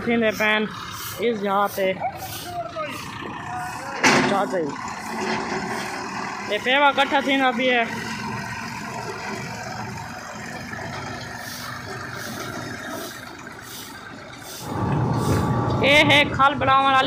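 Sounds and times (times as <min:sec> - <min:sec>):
machinery rumbling: 0:00.0 - 0:17.0
tractor engine running: 0:00.0 - 0:17.0.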